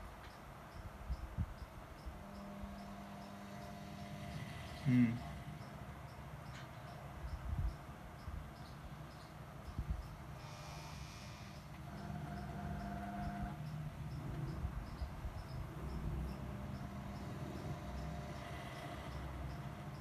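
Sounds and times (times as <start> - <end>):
transformer hum: 1.8 - 20.0.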